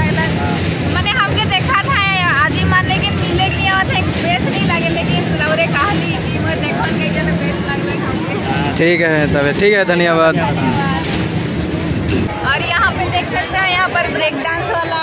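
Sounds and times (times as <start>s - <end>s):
steady low hum: 0.0s - 13.5s
voices talking: 0.0s - 15.0s.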